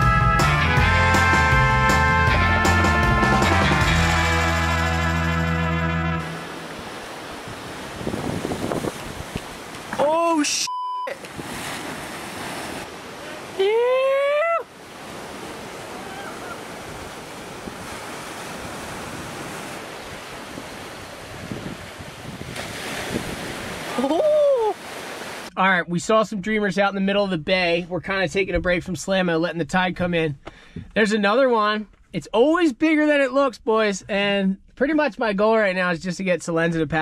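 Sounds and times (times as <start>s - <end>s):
surf breaking on rocks: 6.2s - 10.4s, 11.1s - 13.7s, 14.6s - 25.5s
wind on microphone: 6.8s - 9.9s, 15.4s - 24.9s
voice calls: 13.1s - 14.8s, 15.5s - 17.0s, 23.8s - 24.9s.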